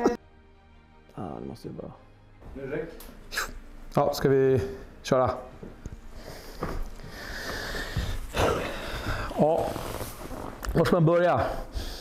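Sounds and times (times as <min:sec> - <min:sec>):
leather seat and clothing rustling: 0:06.0 - 0:11.0.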